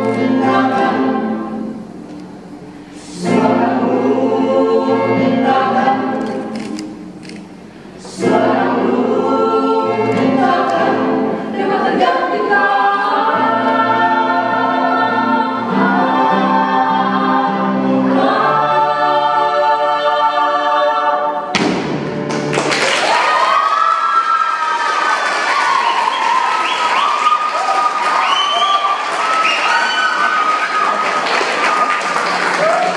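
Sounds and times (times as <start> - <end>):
vocal group singing in harmony: 0.0 - 2.0, 2.6 - 7.0, 7.9 - 21.6
cheering and applause: 22.3 - 32.9.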